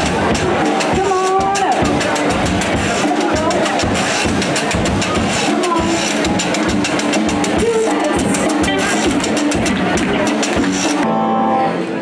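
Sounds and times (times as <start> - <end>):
drum beat: 0.0 - 11.0
live band playing upbeat music: 0.0 - 12.0.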